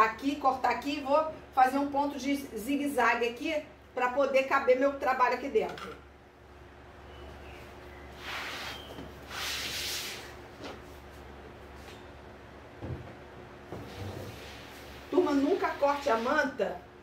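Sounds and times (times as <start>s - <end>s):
rustling swishes on cutting mat: 8.1s - 12.0s
soft bumps: 12.8s - 14.2s.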